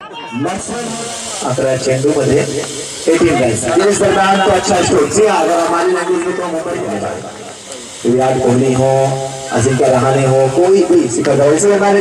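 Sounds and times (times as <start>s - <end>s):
men talking: 0.3s - 12.0s.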